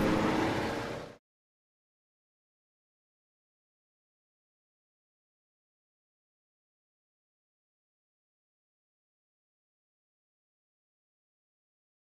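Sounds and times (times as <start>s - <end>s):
truck engine and road noise: 0.0s - 1.2s.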